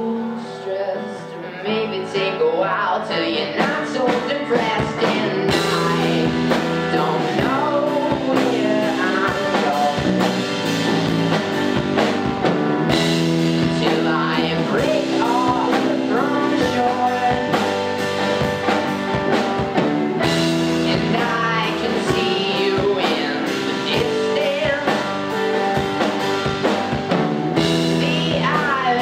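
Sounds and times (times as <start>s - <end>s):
rock band playing live: 0.0s - 29.0s.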